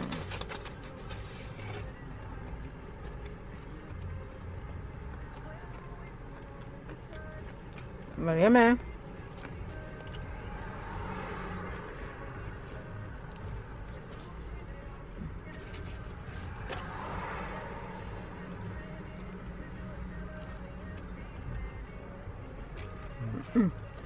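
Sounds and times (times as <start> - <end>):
low hum inside car: 0.0 - 24.0.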